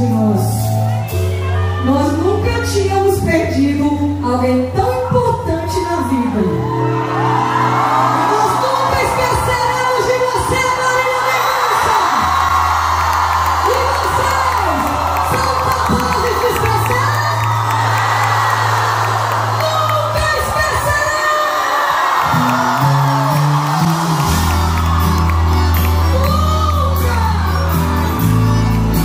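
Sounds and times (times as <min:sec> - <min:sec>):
live band music: 0:00.0 - 0:04.2, 0:21.9 - 0:29.0
crowd cheering and singing along: 0:00.0 - 0:04.3, 0:06.0 - 0:29.0
person singing: 0:22.5 - 0:29.0.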